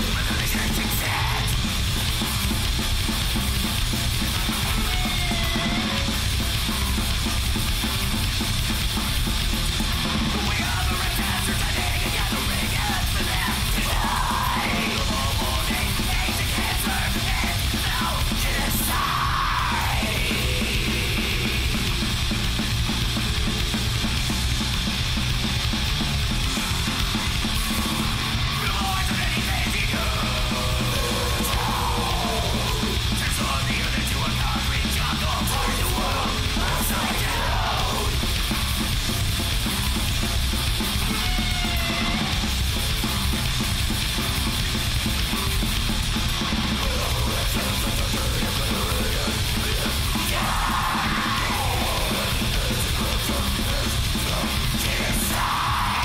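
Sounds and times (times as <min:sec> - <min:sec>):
shouted vocals: 0:00.0 - 0:01.6, 0:04.6 - 0:06.1, 0:10.3 - 0:21.7, 0:28.3 - 0:38.3, 0:41.0 - 0:42.4, 0:46.7 - 0:56.0
punk band playing: 0:00.0 - 0:56.0.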